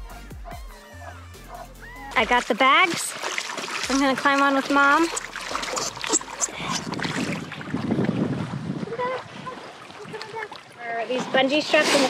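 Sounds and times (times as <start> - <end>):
wind rumbling on microphone: 5.0 - 10.4.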